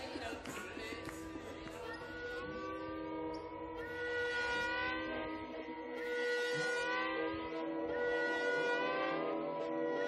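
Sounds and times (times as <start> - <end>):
layered long held notes: 0.0 - 10.0.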